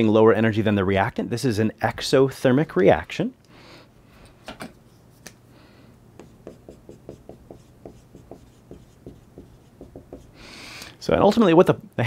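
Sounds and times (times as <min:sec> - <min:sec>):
marker writing on whiteboard: 0:06.2 - 0:10.4.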